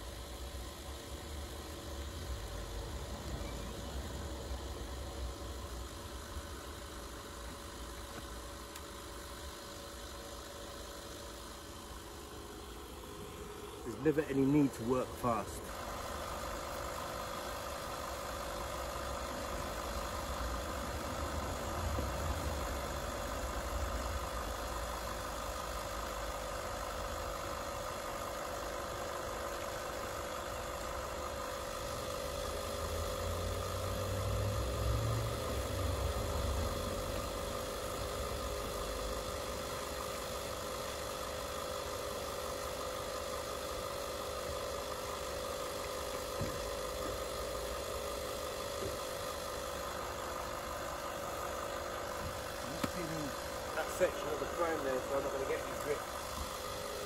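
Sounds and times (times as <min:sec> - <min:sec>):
steady mechanical hum: 0:00.0 - 0:57.0.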